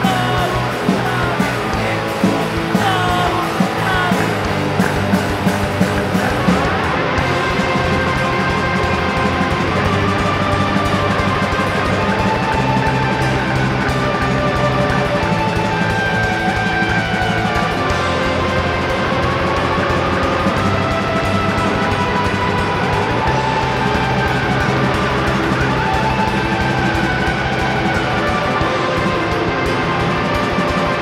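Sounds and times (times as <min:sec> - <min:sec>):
electric guitars sustained notes: 0:00.0 - 0:31.0
live rock band playing: 0:00.0 - 0:31.0.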